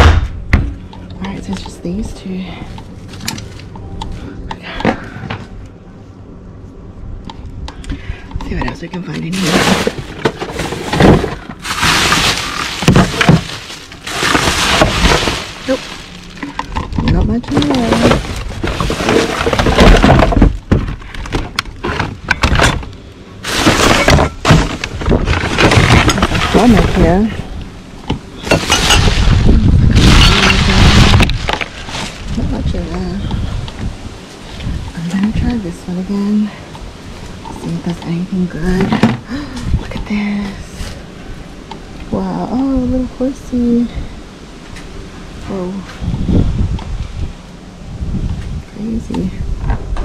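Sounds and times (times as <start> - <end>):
objects clattering: 8.3 - 27.4, 28.1 - 32.4
plastic bags rustling: 9.2 - 22.2, 23.4 - 27.5, 28.4 - 33.2.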